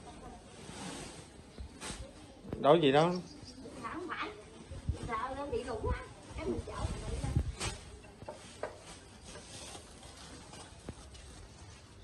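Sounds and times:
plastic bags rustling: 5.1 - 12.0.

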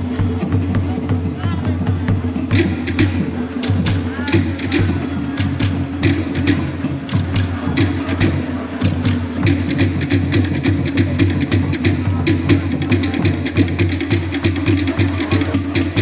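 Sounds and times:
low drum beat: 0.0 - 16.0
sharp wooden strikes: 0.0 - 16.0.

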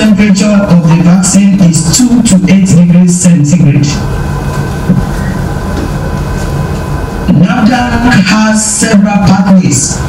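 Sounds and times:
faint two-tone hum: 0.0 - 10.0
low background rumble: 0.0 - 10.0.

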